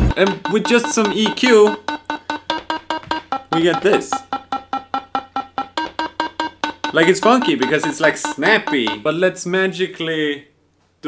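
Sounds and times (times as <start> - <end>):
toy synthesizer short notes: 0.1 - 9.1.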